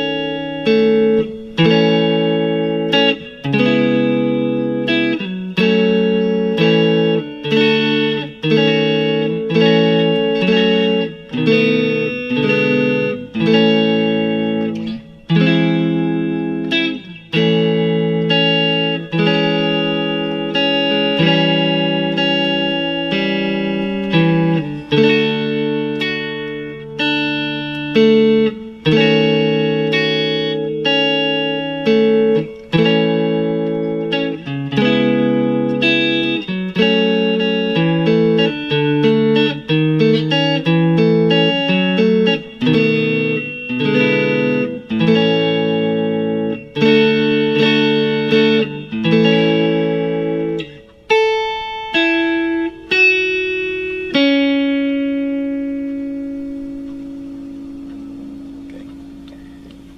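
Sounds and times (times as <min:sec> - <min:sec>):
electric guitar chords ringing: 0:00.0 - 0:59.9
single guitar notes: 0:00.0 - 0:59.9.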